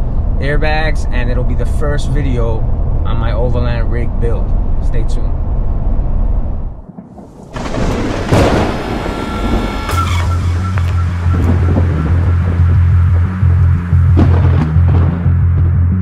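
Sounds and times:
truck cabin road noise: 0.0 - 6.8, 7.6 - 16.0
low pulsing drone: 0.0 - 6.9, 7.6 - 16.0
loud noisy swell with rumble: 0.0 - 15.0.

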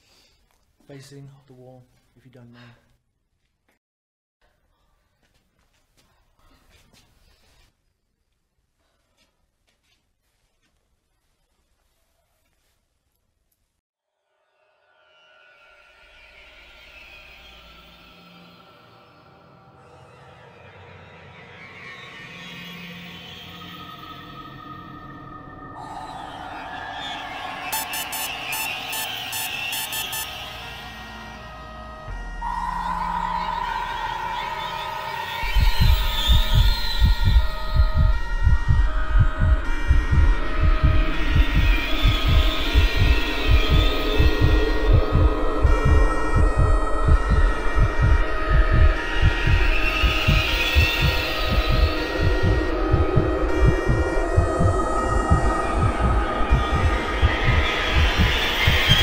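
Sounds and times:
tense film score held tones: 14.2 - 59.0
low heartbeat-like pulse: 35.4 - 59.0.

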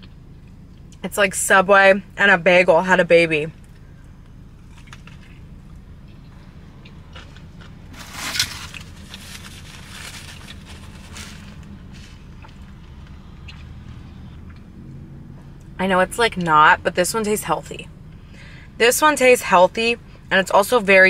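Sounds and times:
low steady hum: 0.0 - 21.0
crunchy wet chewing: 4.6 - 15.0.

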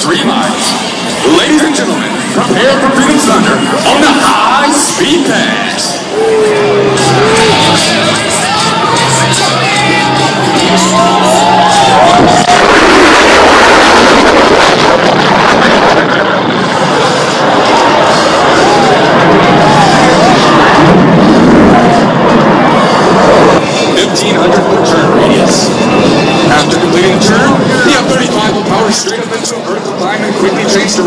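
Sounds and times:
jet engine roar: 0.0 - 31.0
music: 5.9 - 13.1.

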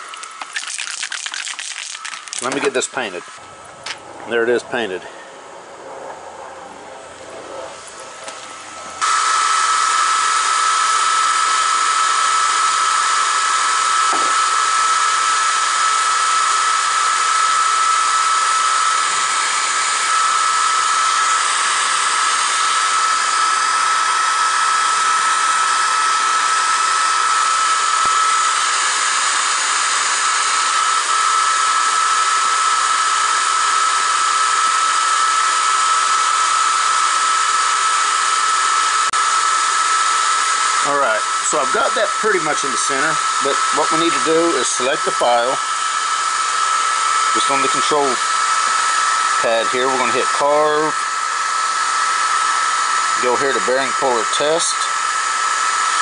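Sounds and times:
electric fan whirring: 0.0 - 56.0.

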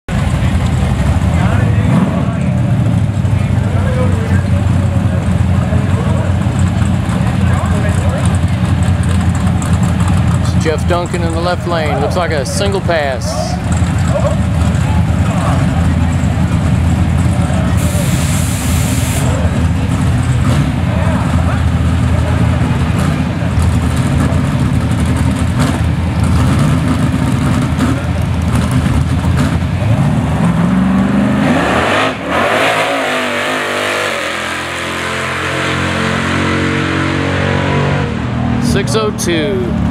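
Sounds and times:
drag racing car engine revving: 0.1 - 39.9.

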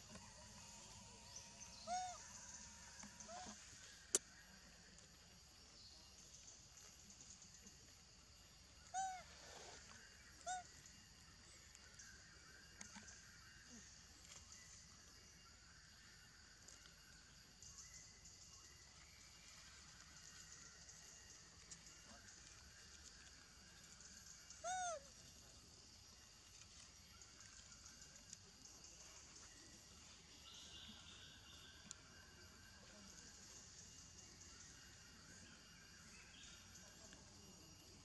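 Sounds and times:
macaque coo call: 1.7 - 2.4, 8.8 - 9.3, 24.6 - 25.2.

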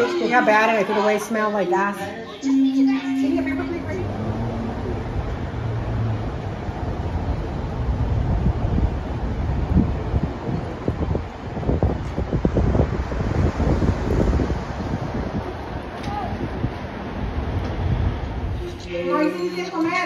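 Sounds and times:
wind buffeting microphone: 3.4 - 19.4.

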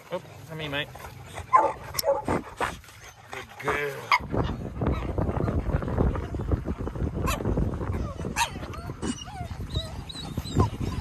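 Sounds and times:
dogs whining and yipping: 1.3 - 11.0.

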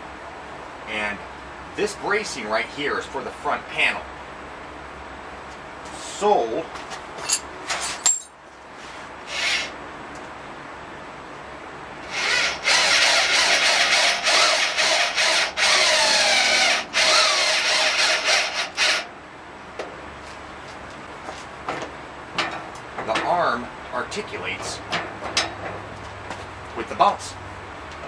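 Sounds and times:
power drill running: 9.3 - 9.7, 12.0 - 19.1.

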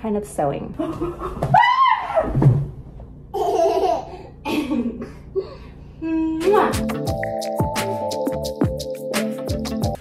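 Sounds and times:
toddler laughing: 3.3 - 4.8.

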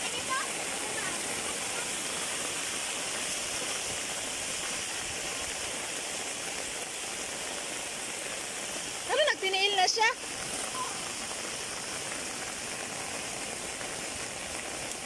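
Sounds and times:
heavy rain falling: 0.0 - 15.0
rainwater running on road: 0.0 - 15.0.

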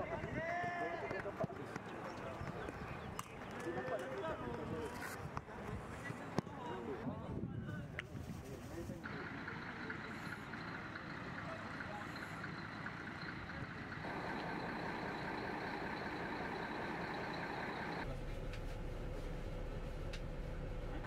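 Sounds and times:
coach engine idling: 9.0 - 21.0.

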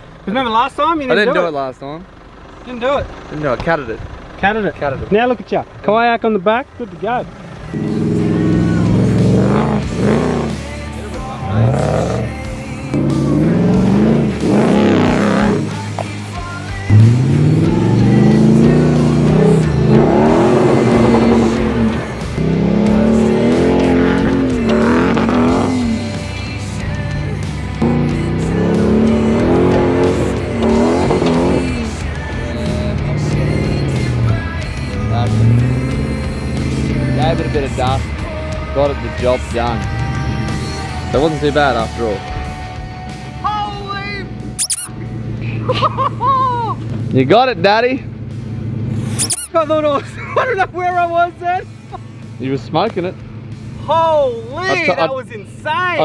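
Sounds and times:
engine revving hard: 7.7 - 10.8, 11.4 - 15.8, 16.8 - 26.3, 27.8 - 38.1.

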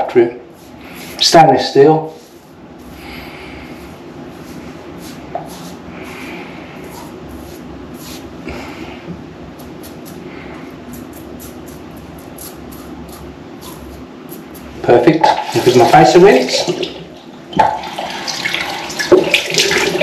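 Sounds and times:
low background hum: 0.0 - 20.0
razor scraping stubble: 9.5 - 14.8.

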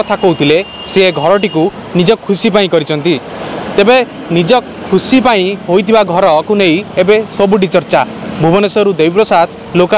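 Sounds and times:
man speaking: 0.0 - 9.9.

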